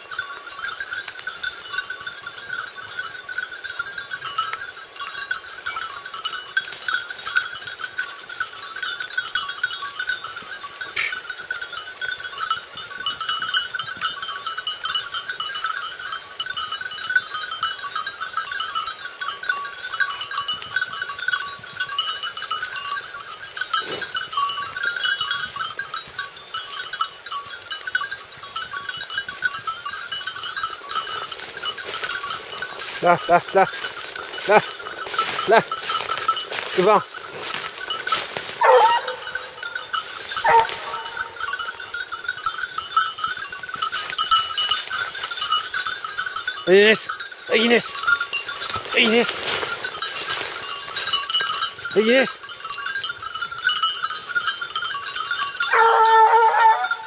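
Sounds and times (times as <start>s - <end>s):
dog collar bells jingling: 0.0s - 57.0s.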